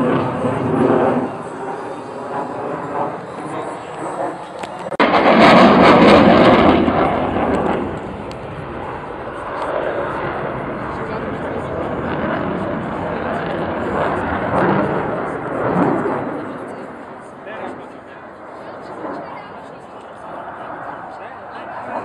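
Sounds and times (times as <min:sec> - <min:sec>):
military jet flying overhead: 0:00.0 - 0:22.0.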